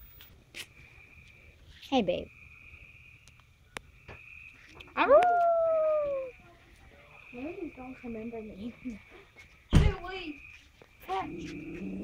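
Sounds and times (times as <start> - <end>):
dog howling: 5.0 - 6.3.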